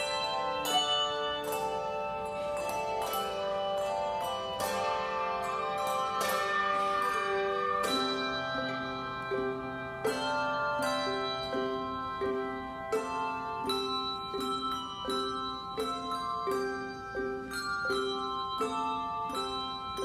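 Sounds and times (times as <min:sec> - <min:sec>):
handbell choir playing: 0:00.0 - 0:20.0
low bells struck with mallets: 0:00.0 - 0:20.0.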